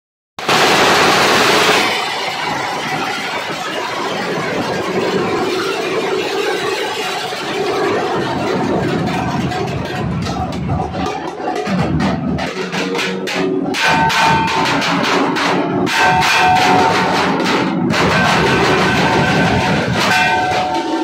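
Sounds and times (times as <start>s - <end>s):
barrel drums beaten with sticks: 7.7s - 21.0s.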